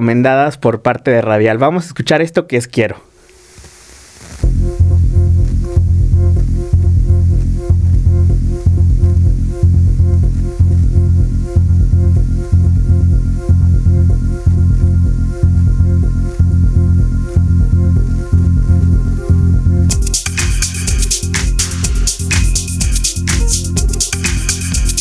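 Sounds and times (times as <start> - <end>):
electronic pop song: 4.4 - 25.0.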